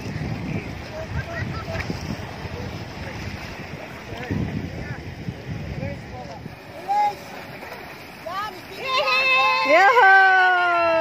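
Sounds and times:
shallow surf washing: 0.0 - 11.0
wind buffeting microphone: 0.0 - 11.0.

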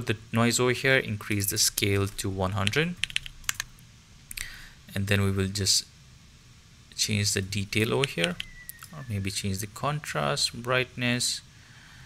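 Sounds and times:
computer keyboard keystrokes: 2.6 - 3.7, 8.0 - 9.0.

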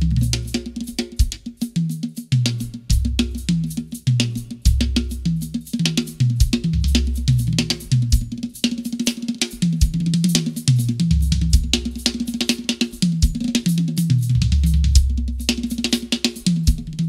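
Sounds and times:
drum kit groove: 0.0 - 17.0.

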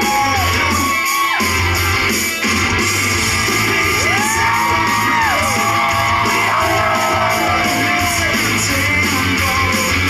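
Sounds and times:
rock song with electric guitar: 0.6 - 10.0.

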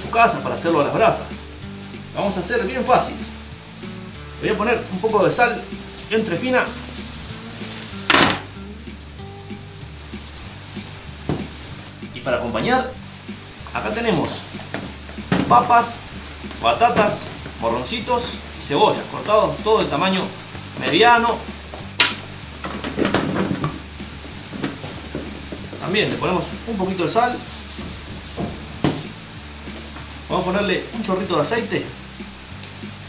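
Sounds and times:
background music with bass line: 0.0 - 33.0
salt shaken from shaker: 4.9 - 11.7, 26.4 - 28.7.

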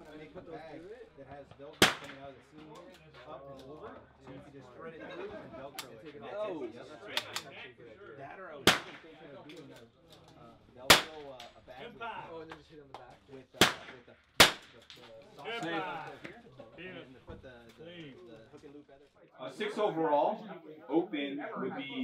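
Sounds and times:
low background talk: 0.0 - 22.0
rifle shots: 1.8 - 2.2, 8.7 - 9.2, 10.9 - 11.2, 13.6 - 14.8.

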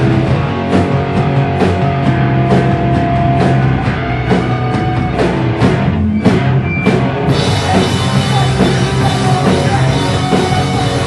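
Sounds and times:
bass guitar: 0.0 - 11.0
distorted electric guitars: 0.0 - 11.0
drum kit and cymbals: 0.0 - 11.0.

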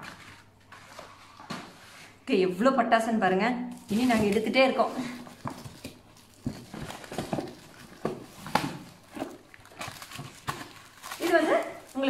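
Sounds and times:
cardboard knocks and rustles: 5.3 - 11.2.

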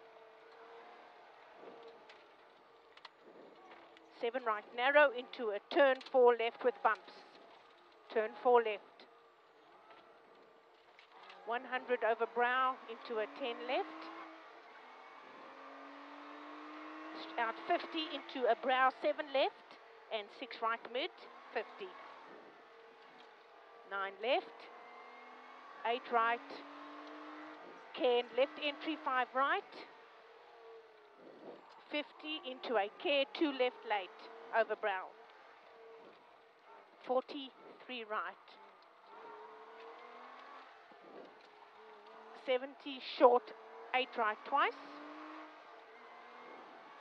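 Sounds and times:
car engine from inside cabin: 0.0 - 4.3, 4.9 - 47.0
road and wind noise: 0.0 - 47.0.

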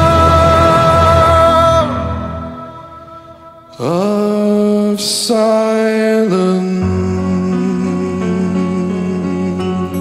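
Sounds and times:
man singing rock ballad: 0.0 - 2.7, 3.7 - 10.0.

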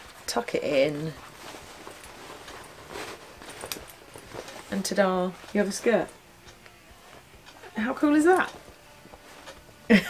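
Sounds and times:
denim fabric rustling: 0.0 - 10.0.

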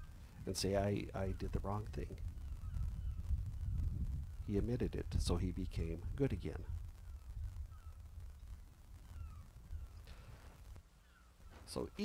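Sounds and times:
distant bird calls: 0.0 - 4.7, 5.4 - 12.0
low outdoor rumble: 0.0 - 12.0.

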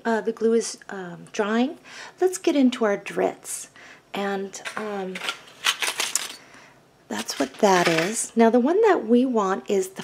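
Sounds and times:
metal hooks clicking and rattling: 4.7 - 6.4.

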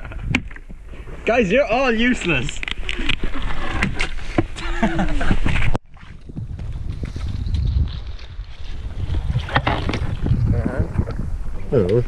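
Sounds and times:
wind buffeting microphone: 0.0 - 0.9, 2.9 - 12.0
laughter: 4.6 - 5.5.

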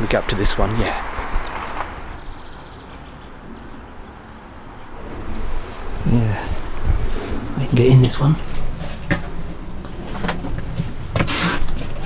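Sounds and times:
steady low rumble: 0.0 - 11.1
short scrape: 11.2 - 11.8.

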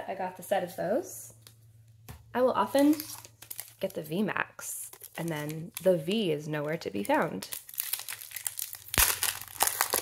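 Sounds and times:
foil wrapper crinkling: 2.8 - 4.1, 4.8 - 10.0.

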